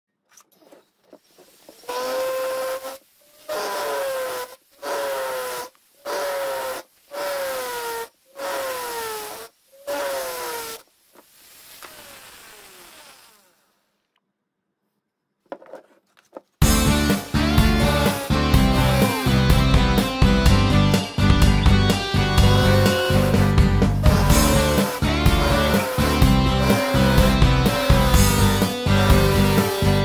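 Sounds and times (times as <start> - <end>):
rotary tool grinding whine: 0.4 - 14.1, 16.8 - 30.0
loud guitar music: 16.6 - 30.0.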